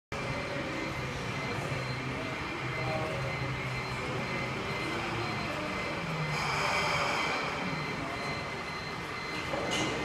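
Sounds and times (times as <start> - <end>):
electric forklift humming: 0.2 - 10.0.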